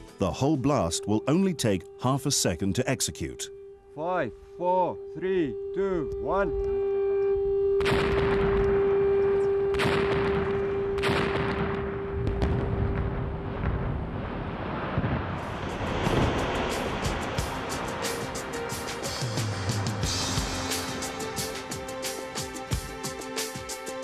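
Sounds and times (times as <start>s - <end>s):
background music with a beat: 15.6s - 24.0s.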